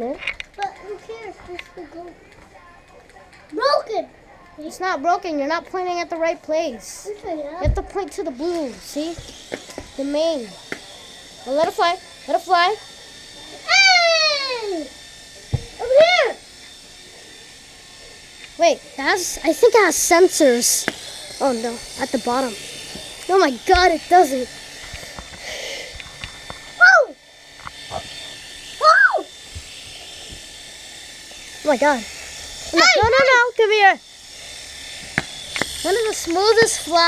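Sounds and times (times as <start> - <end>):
toy drone motors buzzing: 0.0 - 37.0
child shouting: 13.7 - 14.9, 15.8 - 16.4, 26.8 - 27.2, 28.8 - 29.3, 32.7 - 34.0.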